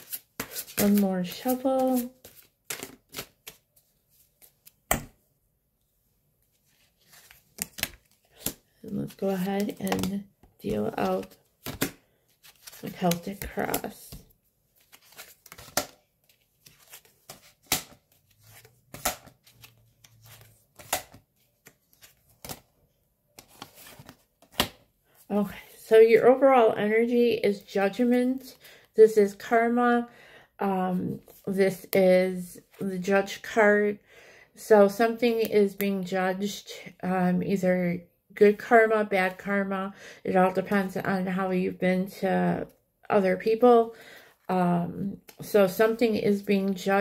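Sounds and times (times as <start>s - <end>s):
cards being shuffled: 0.0s - 5.1s, 6.5s - 22.7s, 23.4s - 24.8s.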